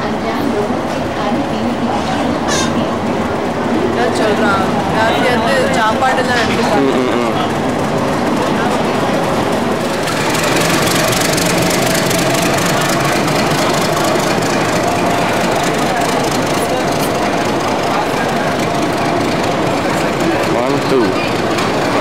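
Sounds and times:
diesel locomotive running past: 0.0s - 22.0s
train coaches rolling: 0.0s - 22.0s.

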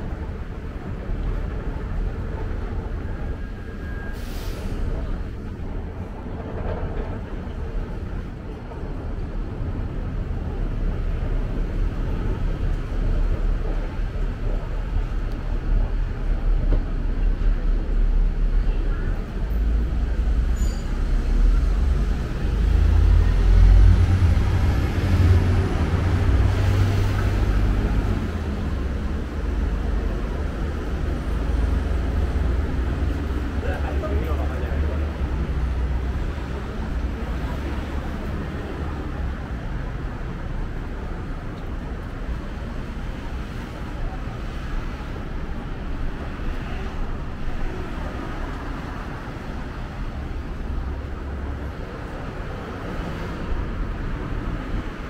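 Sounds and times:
low rumble of road traffic: 0.0s - 55.0s.

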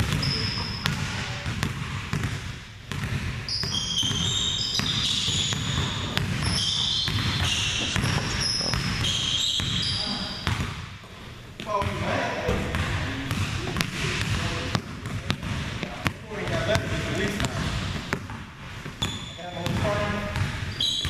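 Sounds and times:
sneaker squeaks: 0.0s - 2.3s, 3.0s - 14.8s, 15.4s - 21.0s
basketball dribbling on hardwood: 0.0s - 10.8s, 11.8s - 21.0s.

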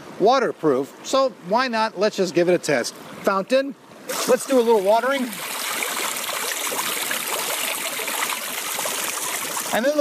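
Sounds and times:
fountain water splashing into basin: 4.0s - 10.0s.

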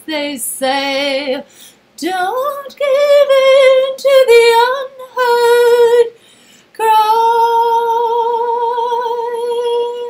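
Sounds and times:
woman singing unaccompanied: 0.0s - 10.0s.

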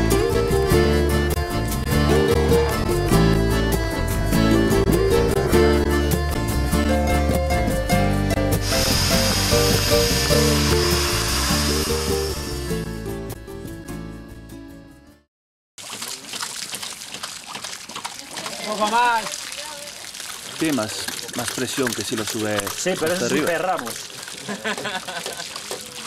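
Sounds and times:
background music: 0.0s - 15.2s
hose water spraying: 8.6s - 12.9s, 15.8s - 26.0s.

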